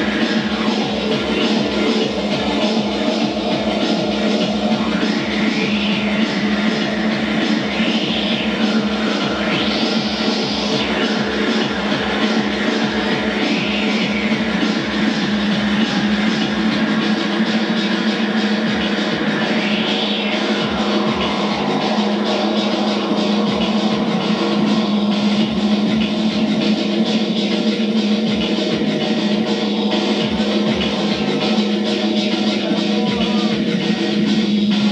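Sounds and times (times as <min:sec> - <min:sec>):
low drone: 0:00.0 - 0:26.8
bright synth sweep: 0:00.0 - 0:27.4
electronic band music on synthesizers: 0:00.0 - 0:34.9.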